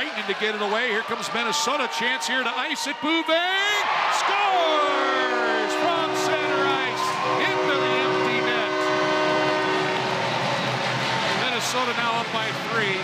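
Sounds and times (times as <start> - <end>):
crowd noise: 0.0 - 13.0
goal horn multi-tone chord: 4.9 - 10.2.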